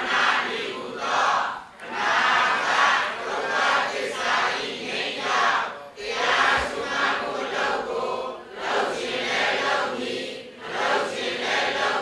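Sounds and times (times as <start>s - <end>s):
voices chanting in unison: 0.0s - 12.0s.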